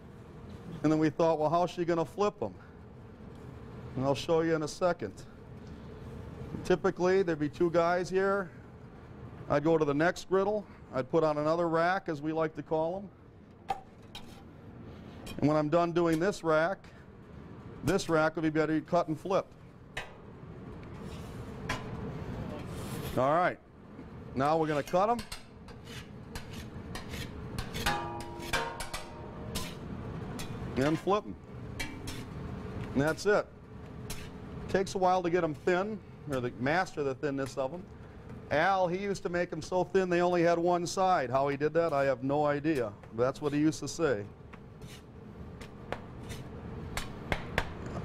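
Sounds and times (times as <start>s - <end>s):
low kitchen noise: 0.0s - 48.0s
metal spatula scraping on griddle: 14.1s - 15.4s, 21.0s - 21.7s, 22.7s - 23.2s, 24.5s - 33.3s, 33.9s - 34.6s, 44.7s - 47.1s.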